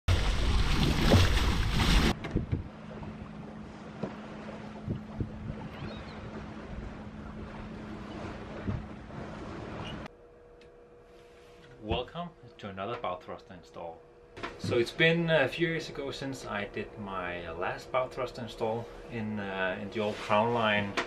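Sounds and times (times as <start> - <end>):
wind buffeting microphone: 2.1 - 3.8, 4.4 - 10.0
steady low hum: 2.1 - 21.0.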